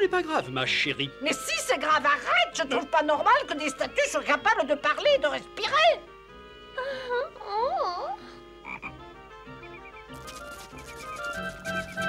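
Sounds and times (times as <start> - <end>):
faint music: 0.0 - 12.0
cartoon frog croaking: 8.6 - 8.9.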